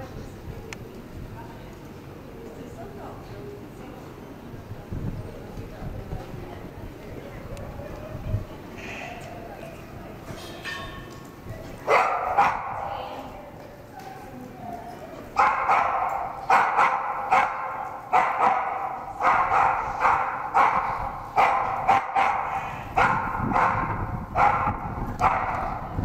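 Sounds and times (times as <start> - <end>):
dog barking: 11.8 - 12.9, 15.4 - 26.0.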